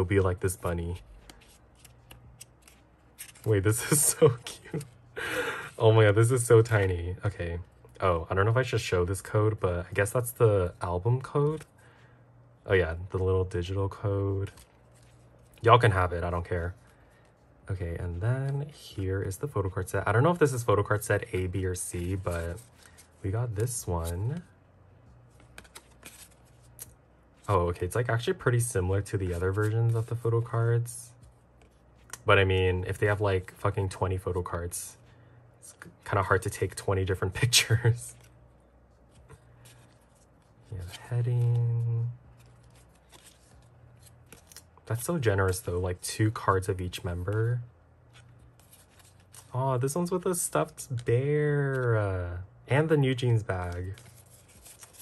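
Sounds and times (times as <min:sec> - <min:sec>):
booklet pages turning: 0:00.1 - 0:05.0, 0:14.0 - 0:24.5, 0:25.1 - 0:34.7, 0:35.8 - 0:52.2, 0:53.0 - 0:55.0
cards sliding and clicking: 0:01.1 - 0:03.5, 0:25.3 - 0:26.9, 0:42.4 - 0:44.7, 0:53.6 - 0:55.0.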